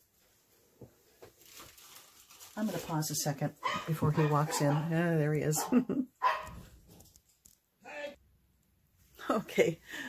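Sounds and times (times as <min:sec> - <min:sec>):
dog barking: 0:03.6 - 0:06.7.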